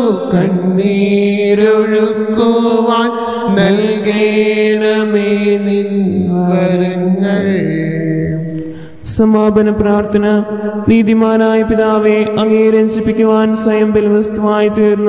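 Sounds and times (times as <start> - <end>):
person chanting a hymn: 0.0 - 15.0.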